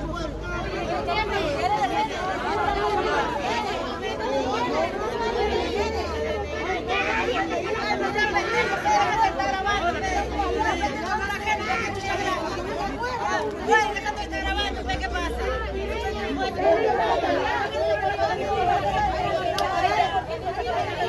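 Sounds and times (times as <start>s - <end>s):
crowd talking: 0.0s - 21.0s.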